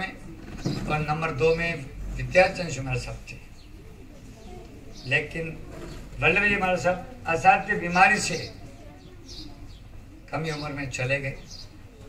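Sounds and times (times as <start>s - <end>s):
bird cooing: 3.6s - 6.2s, 8.2s - 10.3s, 11.4s - 12.0s.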